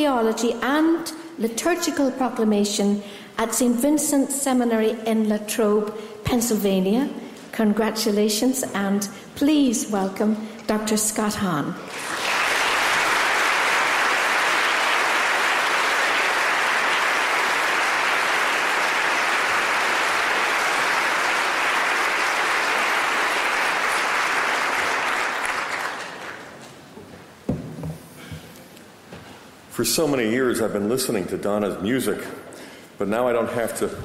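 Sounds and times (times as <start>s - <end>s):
audience applauding: 11.9s - 26.6s.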